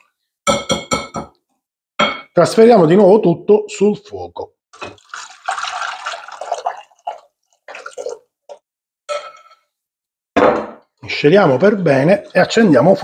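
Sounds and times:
thick liquid pouring: 0:04.8 - 0:08.3.

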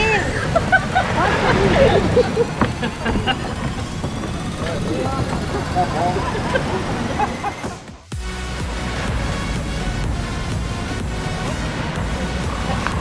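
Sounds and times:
women laughing and chattering: 0:00.0 - 0:08.0, 0:11.3 - 0:13.0
low outdoor rumble: 0:00.0 - 0:13.0.

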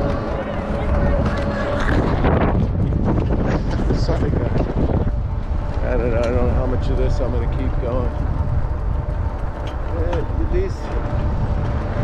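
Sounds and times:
faint voices: 0:00.0 - 0:11.3
wind buffeting microphone: 0:00.0 - 0:12.0.

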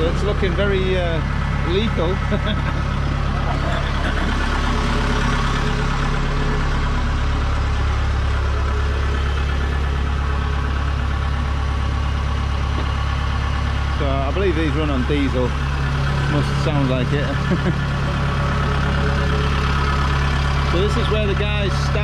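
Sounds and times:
diesel engine droning: 0:00.0 - 0:22.0.

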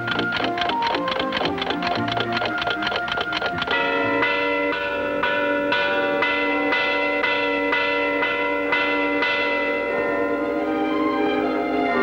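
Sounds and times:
deep bell tolling: 0:03.7 - 0:10.5.

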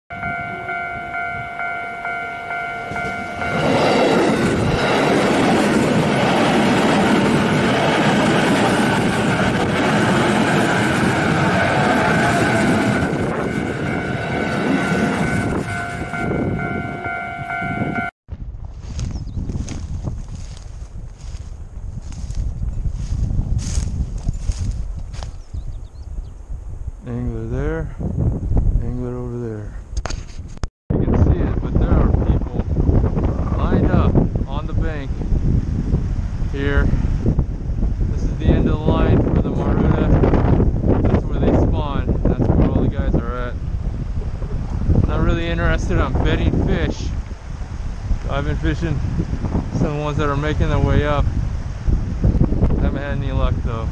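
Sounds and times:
level crossing warning bell: 0:00.1 - 0:05.0, 0:09.2 - 0:09.8, 0:12.2 - 0:18.1
wind buffeting microphone: 0:00.1 - 0:53.9
train rumbling and clattering: 0:00.2 - 0:18.1.

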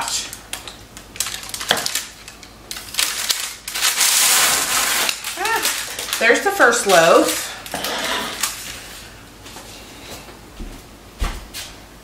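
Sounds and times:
parchment paper crinkling: 0:00.3 - 0:09.1.

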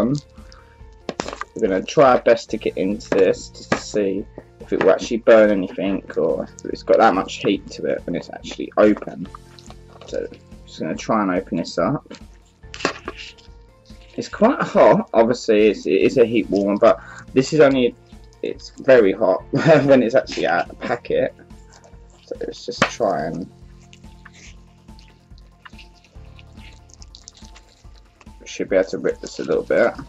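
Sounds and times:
wet gel squelching: 0:00.0 - 0:11.4, 0:12.0 - 0:30.0
faint background music: 0:00.0 - 0:30.0
knife cutting plastic pouch: 0:00.2 - 0:10.4, 0:12.0 - 0:14.9, 0:21.7 - 0:28.4.

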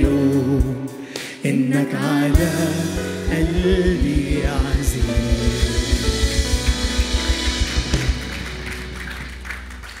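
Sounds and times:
drum beat: 0:03.3 - 0:10.0.

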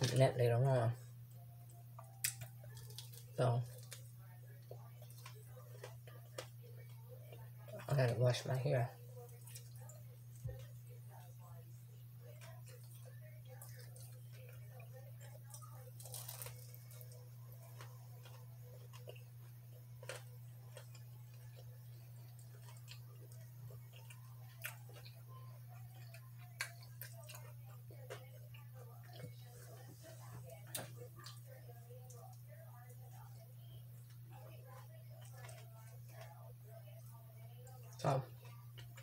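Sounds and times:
chewing fries: 0:00.0 - 0:39.0
steady low hum: 0:00.0 - 0:39.0.

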